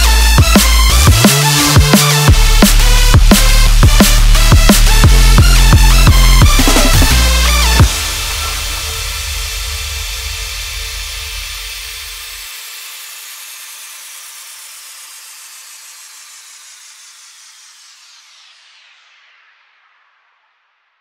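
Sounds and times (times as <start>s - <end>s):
noisy falling synth sweep: 0.0s - 12.4s.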